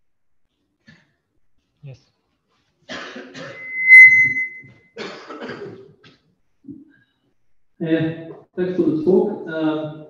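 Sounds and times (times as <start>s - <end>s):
person coughing: 2.9s - 3.6s, 5.0s - 5.8s
high-pitched whistling tone: 3.5s - 4.7s.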